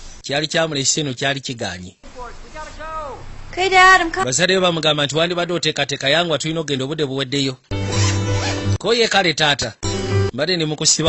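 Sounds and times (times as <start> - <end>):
person speaking: 2.0 - 4.8
background music: 7.7 - 8.8, 9.8 - 10.4
suitcase zipper pulled: 7.8 - 8.8.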